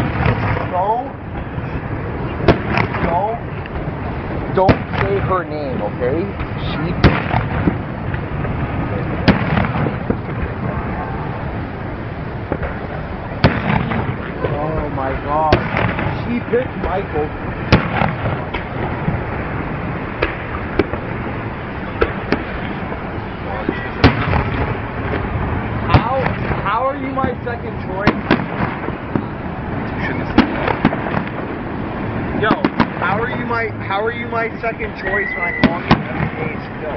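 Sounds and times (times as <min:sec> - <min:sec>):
fireworks bangs: 0:00.0 - 0:36.9
steady background noise: 0:00.0 - 0:36.9
faint firework pops: 0:02.4 - 0:03.9, 0:04.6 - 0:05.3, 0:06.4 - 0:08.3, 0:09.2 - 0:10.5, 0:13.4 - 0:14.6, 0:15.5 - 0:16.2, 0:17.7 - 0:19.2, 0:23.6 - 0:25.3, 0:28.0 - 0:29.3, 0:30.3 - 0:31.5, 0:32.5 - 0:33.1.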